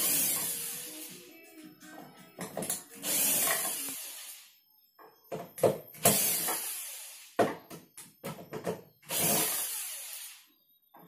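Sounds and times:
cordless drill whirring: 3.0 - 4.4, 6.0 - 7.4, 9.1 - 10.4.

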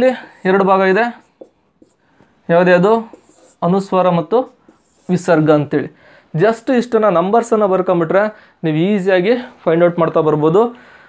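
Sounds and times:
man speaking: 0.0 - 1.3, 2.5 - 10.8
marker drawing on a whiteboard: 0.0 - 5.9.

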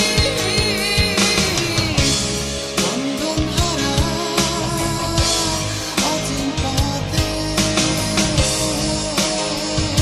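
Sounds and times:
drum kit beat: 0.0 - 10.0
electric guitar: 0.0 - 10.0.

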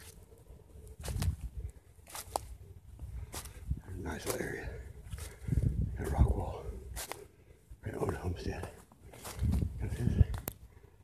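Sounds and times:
footsteps crunching dry leaves: 0.8 - 7.3, 7.9 - 10.4.

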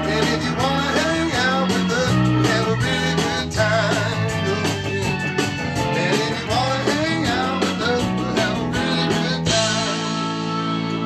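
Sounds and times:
person singing lead: 0.0 - 5.2, 5.8 - 11.0
bass guitar: 0.0 - 11.0
electric guitars: 0.0 - 11.0
organ: 0.0 - 11.0.

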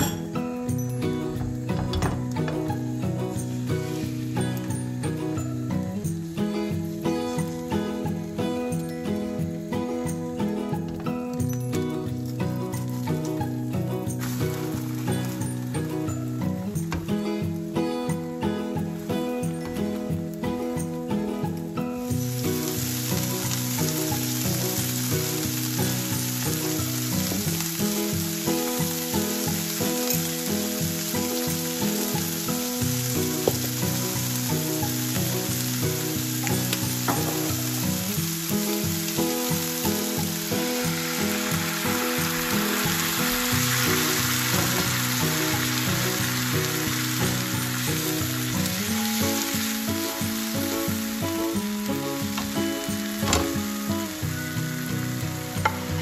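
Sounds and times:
bean sprouts sizzling in a frying pan: 0.0 - 56.0
water poured into hot pan: 0.0 - 56.0.

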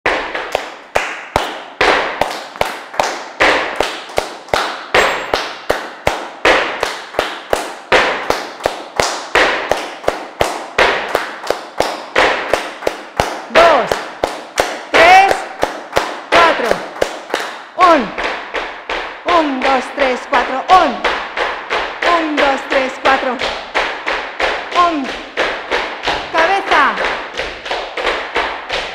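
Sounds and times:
group clapping hands in rhythm: 0.0 - 28.9
person calling out: 13.5 - 14.0, 15.0 - 15.5, 16.3 - 16.8, 17.8 - 18.2, 19.3 - 21.0, 22.0 - 23.4, 24.8 - 25.2, 26.3 - 27.0.

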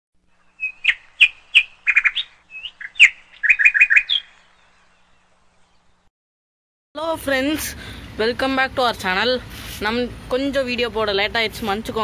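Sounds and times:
bird chirping: 0.3 - 6.1.

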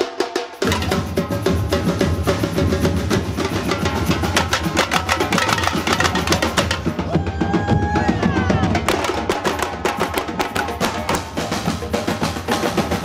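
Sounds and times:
street drum band playing: 0.0 - 13.0
deep low drum beat: 0.6 - 13.0.

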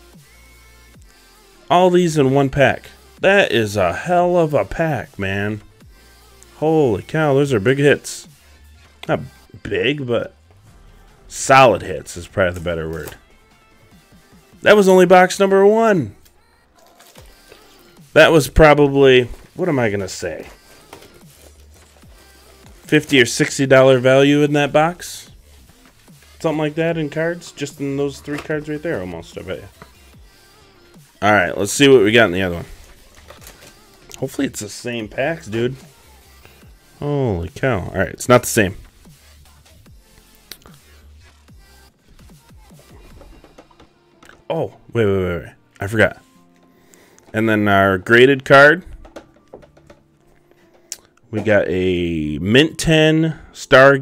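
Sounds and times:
faint background music: 0.0 - 54.0
man speaking: 1.7 - 5.6, 6.6 - 8.3, 9.0 - 10.4, 11.2 - 13.3, 14.6 - 16.2, 18.1 - 20.6, 22.8 - 25.4, 26.4 - 29.8, 31.2 - 32.8, 34.1 - 35.9, 37.0 - 38.8, 44.3 - 46.2, 47.3 - 49.2, 51.3 - 54.0.

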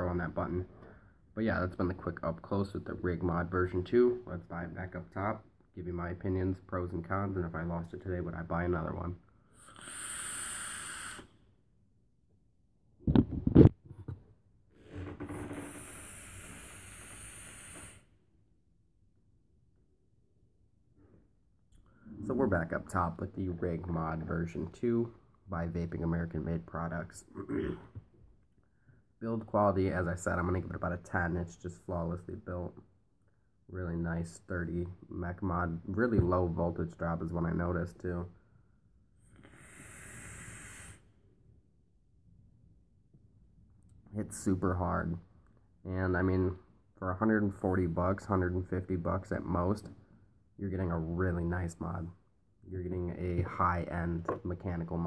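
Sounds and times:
vape hiss: 9.6 - 11.3, 15.5 - 18.1, 39.3 - 41.1.

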